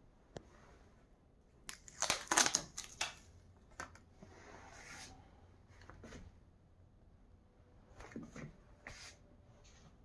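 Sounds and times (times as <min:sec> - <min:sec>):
tape peeling with crackling rip: 0:01.7 - 0:03.2.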